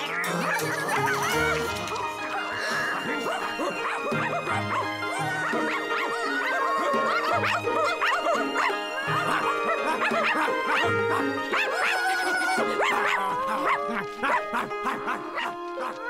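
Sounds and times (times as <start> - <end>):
cartoon soundtrack music: 0.0 - 16.0
high kitten cries: 2.4 - 13.8.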